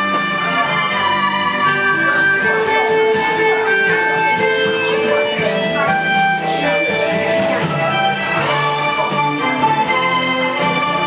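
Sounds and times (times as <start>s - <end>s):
guitar-like melody: 0.0s - 11.0s
karaoke backing track: 0.0s - 11.0s.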